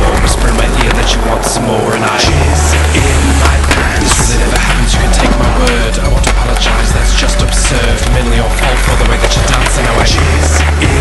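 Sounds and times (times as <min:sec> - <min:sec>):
pop music with heavy bass: 0:00.0 - 0:11.0
skateboard clacking: 0:00.0 - 0:11.0
skateboard wheels rolling on concrete: 0:00.0 - 0:11.0.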